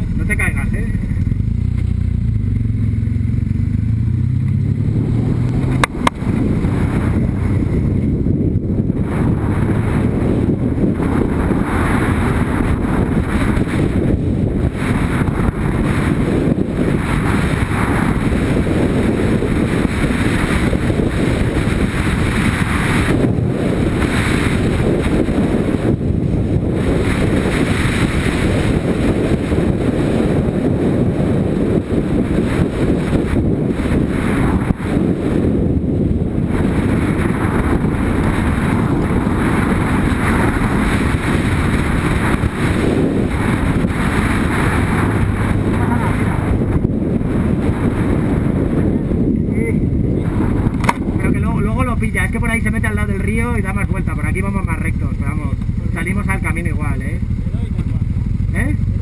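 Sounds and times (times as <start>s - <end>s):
motorcycle engine running: 0.0s - 59.0s
tyres on road: 0.0s - 59.0s
wind buffeting on microphone: 0.0s - 59.0s.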